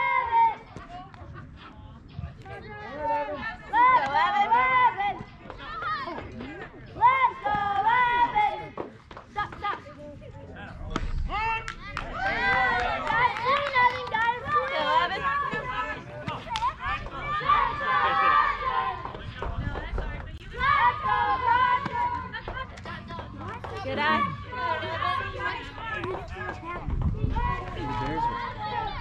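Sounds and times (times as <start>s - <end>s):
people shouting and calling out: 0.0s - 29.0s.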